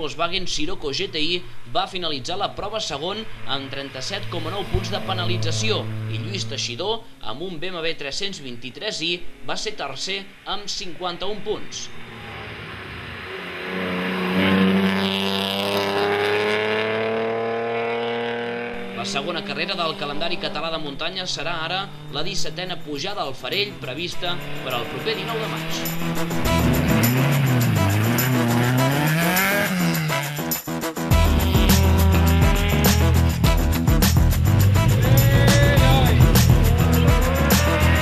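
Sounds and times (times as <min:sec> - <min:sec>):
race car engine accelerating: 0:02.8 - 0:06.8, 0:11.8 - 0:22.8, 0:23.8 - 0:38.0
background music: 0:23.4 - 0:38.0.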